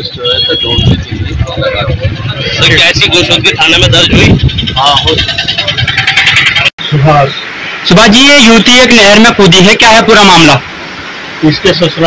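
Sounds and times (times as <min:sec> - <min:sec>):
man talking outdoors: 0:00.0 - 0:05.9, 0:06.7 - 0:12.0
loud steady background noise: 0:00.0 - 0:12.0.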